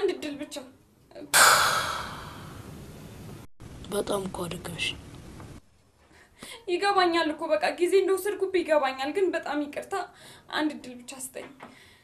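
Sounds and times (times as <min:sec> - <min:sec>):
person exhaling heavily: 0:01.3 - 0:02.8.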